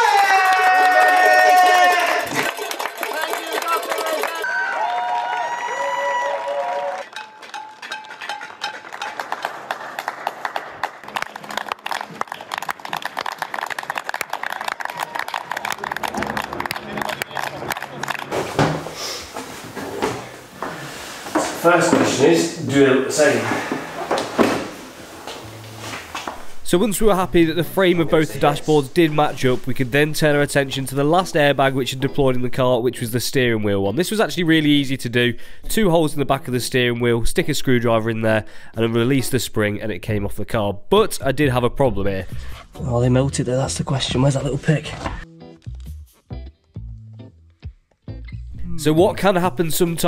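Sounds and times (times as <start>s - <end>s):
crowd clapping and cheering: 0.0s - 18.6s
music: 15.2s - 18.4s, 25.3s - 34.2s, 42.3s - 50.0s.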